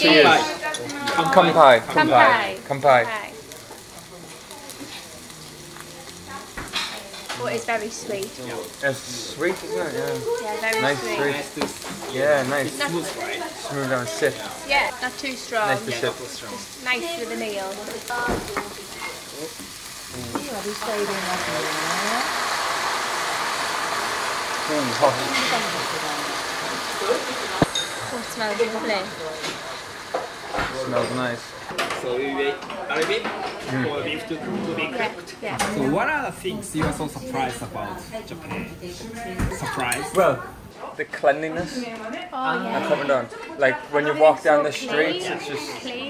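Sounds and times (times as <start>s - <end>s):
food sizzling in a pan: 0.0s - 46.0s.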